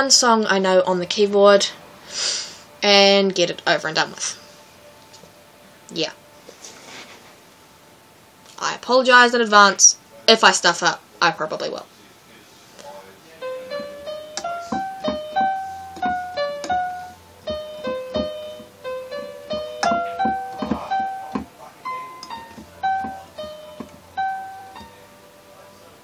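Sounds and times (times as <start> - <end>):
electronic keyboard melody: 13.4 - 26.0.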